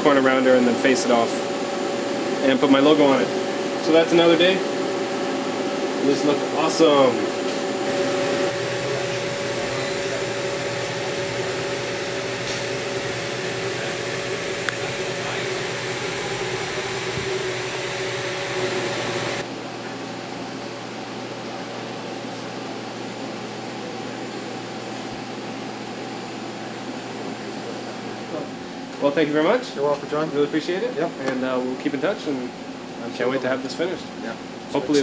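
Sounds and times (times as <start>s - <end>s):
machine shop machinery hum: 0.0s - 35.0s.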